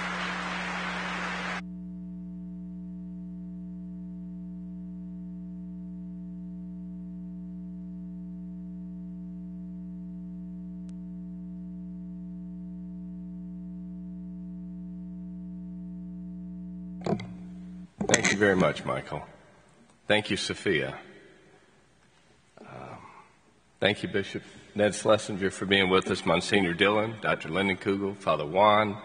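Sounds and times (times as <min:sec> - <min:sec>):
electrical hum-buzz: 0:00.0 - 0:29.0
brief knock: 0:17.0 - 0:17.4.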